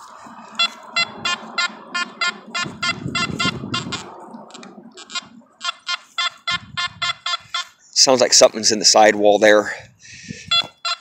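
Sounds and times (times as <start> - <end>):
coil rustling over dirt and leaves: 0.0 - 1.5
metal detector short beeps: 0.6 - 4.0, 5.0 - 7.8, 10.4 - 11.0.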